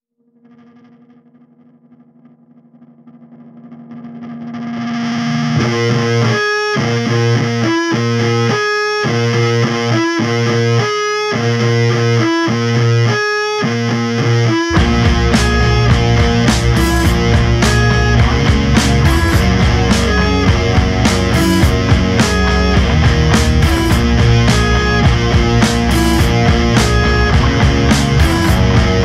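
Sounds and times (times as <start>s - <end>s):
distorted electric guitar: 0.2s - 29.0s
heavy fuzz guitar riff: 0.3s - 29.0s.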